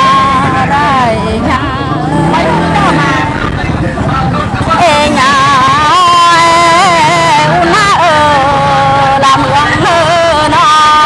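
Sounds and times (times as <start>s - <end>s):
person singing folk song: 0.0s - 11.0s.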